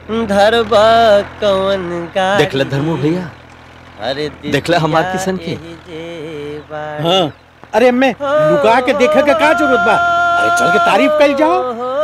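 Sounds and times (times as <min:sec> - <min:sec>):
man chanting held tones: 0:00.0 - 0:12.0.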